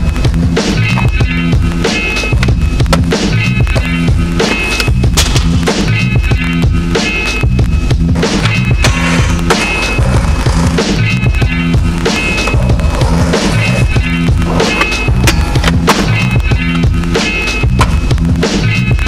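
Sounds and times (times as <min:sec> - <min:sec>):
music soundtrack: 0:00.0 - 0:19.0
skateboard wheels rolling: 0:00.2 - 0:06.1, 0:08.0 - 0:18.3
skateboard clacks: 0:08.2 - 0:18.1.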